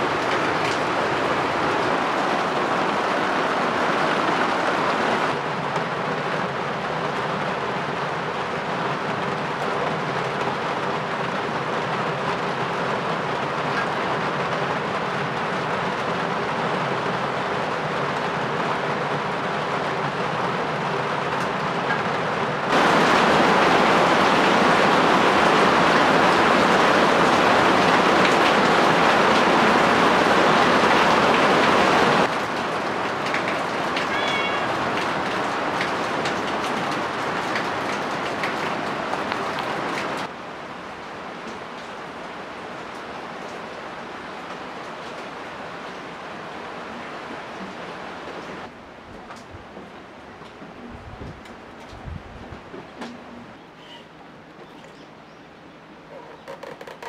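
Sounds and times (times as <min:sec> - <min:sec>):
steady rain: 0:00.0 - 0:57.0.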